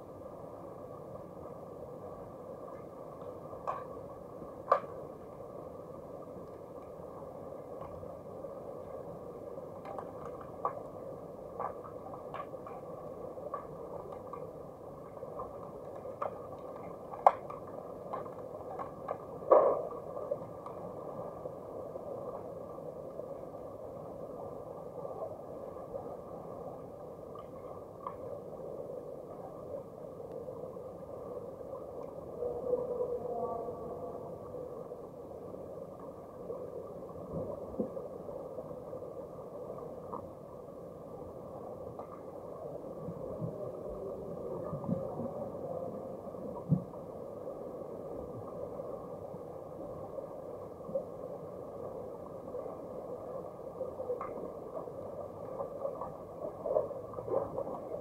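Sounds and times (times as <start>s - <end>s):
muffled underwater water noise: 0.0s - 58.0s
underwater knocks and thumps: 17.2s - 20.0s.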